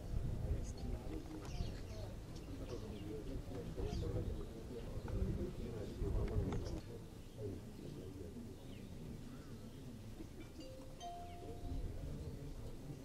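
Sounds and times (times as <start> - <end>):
low outdoor rumble and murmur: 0.0 - 13.0.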